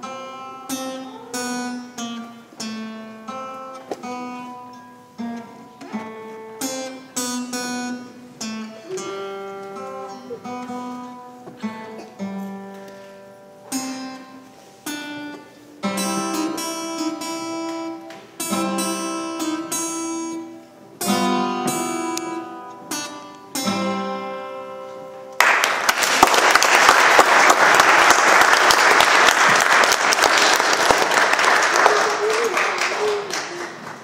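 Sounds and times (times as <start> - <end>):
acoustic guitars strumming chords: 0.0 - 31.9
audience applause: 25.4 - 34.0.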